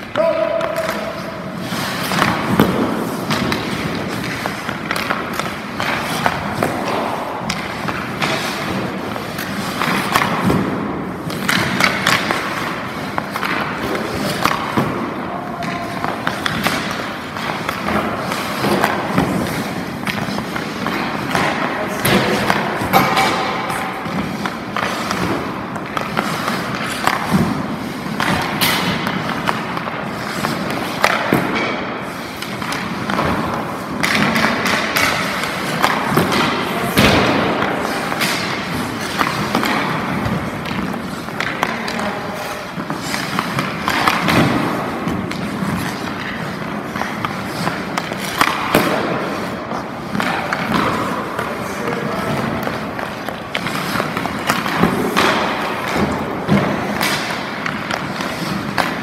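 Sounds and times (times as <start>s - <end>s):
pucks hitting goalie pads: 0.0s - 59.0s
skates scraping on ice: 0.0s - 59.0s
sticks striking pucks: 0.0s - 59.0s.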